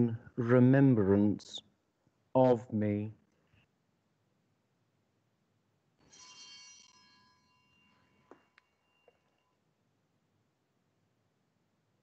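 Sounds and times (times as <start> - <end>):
altar bells ringing: 6.0 - 9.6.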